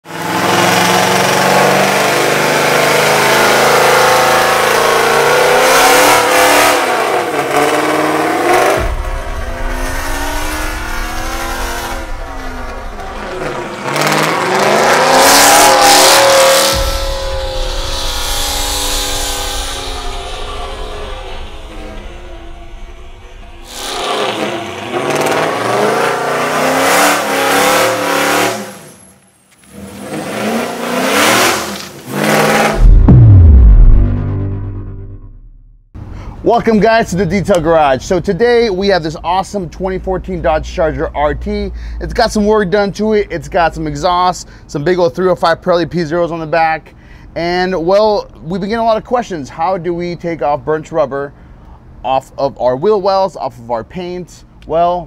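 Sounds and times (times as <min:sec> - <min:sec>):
car engine revving hard: 0:00.1 - 0:28.8, 0:29.7 - 0:34.4.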